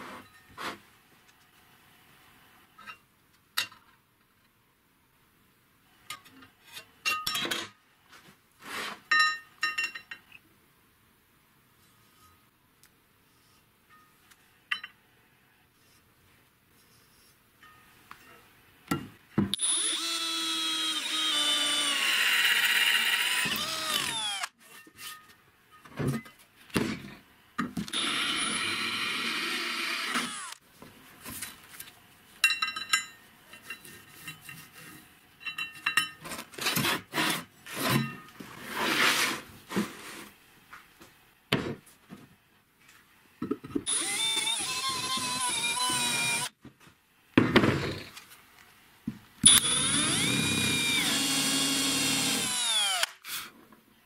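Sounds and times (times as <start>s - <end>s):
electric drill boring: 19.6s - 24.5s, 27.9s - 30.6s, 43.9s - 46.5s, 49.4s - 53.2s.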